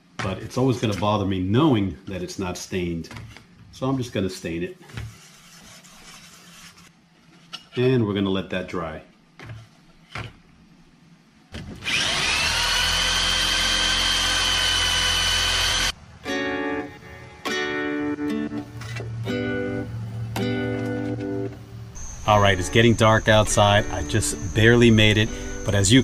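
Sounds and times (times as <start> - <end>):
power drill whining: 11.7 - 15.9, 22.0 - 26.0
plucked guitar music: 16.2 - 26.0.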